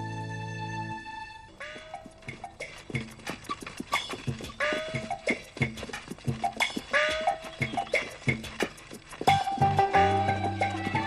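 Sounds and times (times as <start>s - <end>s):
music with sliding notes: 0.0s - 11.0s
hooves clip-clopping: 1.6s - 11.0s.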